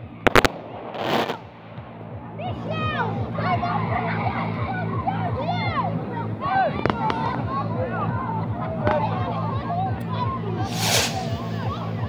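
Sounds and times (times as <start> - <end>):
firework bangs: 0.2 - 2.4, 10.6 - 11.6
young voices shouting: 2.3 - 10.6.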